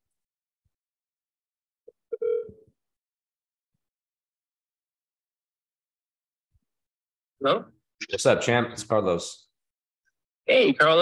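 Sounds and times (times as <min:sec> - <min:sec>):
phone call tone beep: 0:02.1 - 0:02.7.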